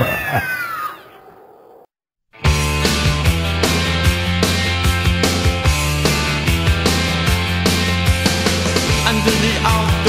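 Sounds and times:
high descending cry: 0:00.0 - 0:01.3.

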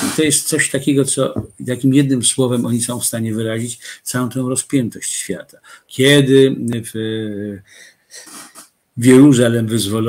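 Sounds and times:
faint breathing: 0:03.8 - 0:04.1, 0:05.6 - 0:05.9, 0:07.6 - 0:08.8.

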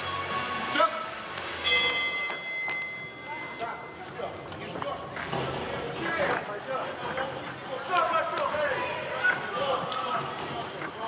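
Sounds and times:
boxing ring bell struck: 0:01.6 - 0:03.9
murmur of voices: 0:03.0 - 0:11.0.

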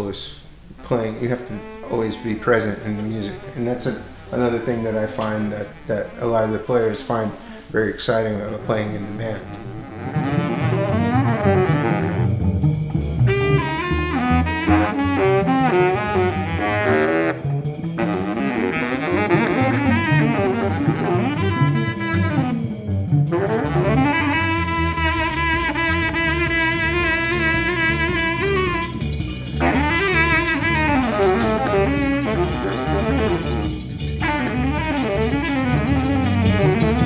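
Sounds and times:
jazz ensemble playing: 0:00.0 - 0:37.0
saxophone: 0:00.0 - 0:37.0
double bass: 0:00.4 - 0:37.0
drums: 0:09.0 - 0:37.0.

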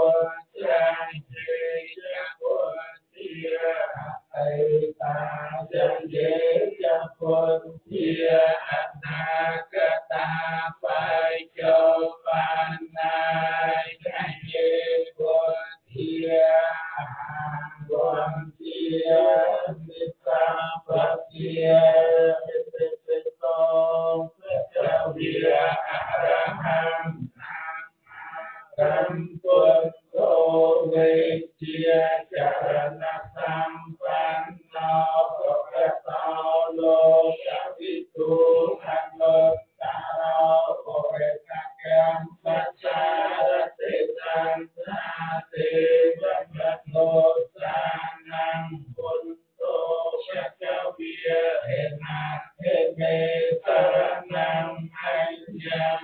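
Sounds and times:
man chanting into a microphone: 0:00.0 - 0:27.5, 0:28.7 - 0:56.0.

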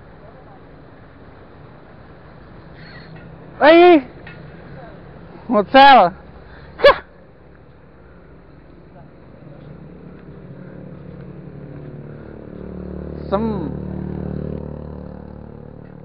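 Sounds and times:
passing vehicle engine: 0:00.0 - 0:06.8, 0:07.5 - 0:16.0.

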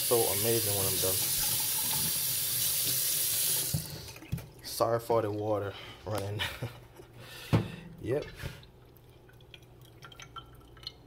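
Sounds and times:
water dripping in metal sink: 0:08.8 - 0:11.0.

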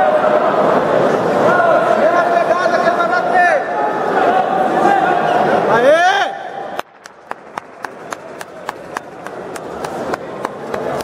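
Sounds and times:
crowd murmur: 0:00.0 - 0:02.4, 0:03.6 - 0:11.0
person clapping: 0:06.9 - 0:11.0.

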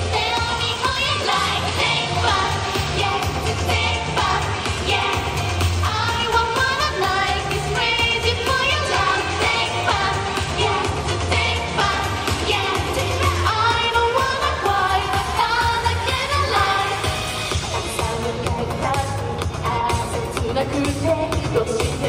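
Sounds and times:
woman singing pop song: 0:00.0 - 0:22.0.

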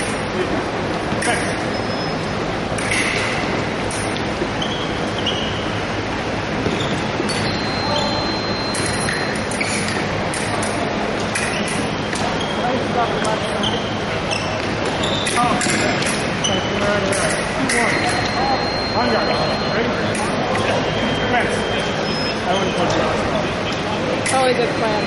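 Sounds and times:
shoes squeaking on wooden floor: 0:04.4 - 0:05.8, 0:06.6 - 0:08.2
background chatter: 0:07.4 - 0:25.0.

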